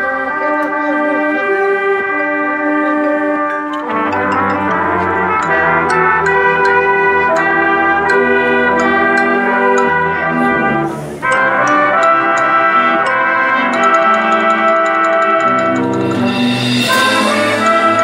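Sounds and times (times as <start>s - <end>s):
brass and percussion band: 0.0s - 18.0s.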